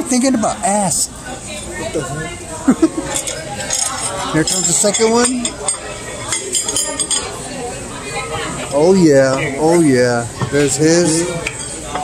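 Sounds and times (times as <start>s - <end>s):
voices murmuring: 0.0s - 12.0s
cutlery clinking on plates: 3.0s - 7.4s, 10.4s - 12.0s.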